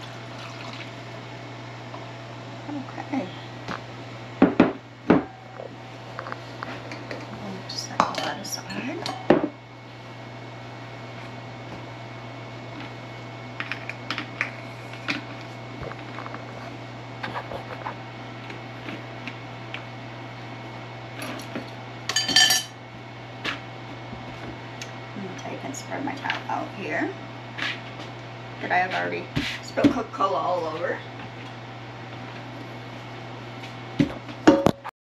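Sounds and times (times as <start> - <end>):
steady low hum: 0.0 - 34.9.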